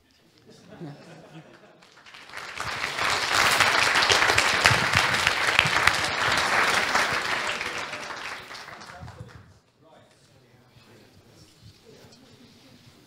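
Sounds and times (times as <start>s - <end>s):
audience applauding: 1.5s - 9.4s.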